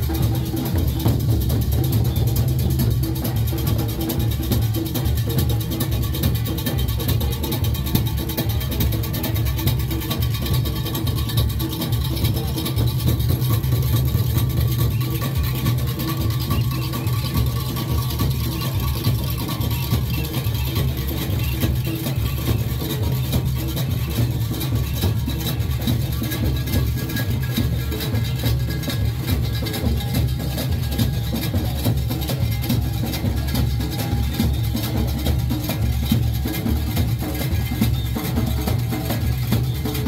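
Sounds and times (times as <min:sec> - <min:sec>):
drums beating fast rhythm: 0:00.0 - 0:40.0
other percussion: 0:00.0 - 0:40.0.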